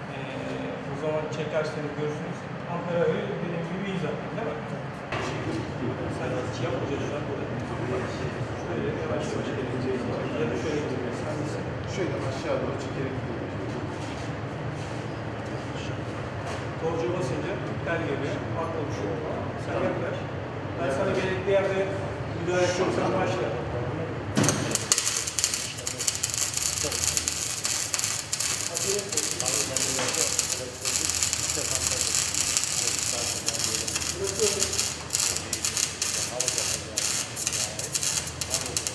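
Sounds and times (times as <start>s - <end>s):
man talking: 20.9s - 38.9s
steady dense hiss: 23.9s - 38.9s
welding arc crackling: 24.4s - 38.9s.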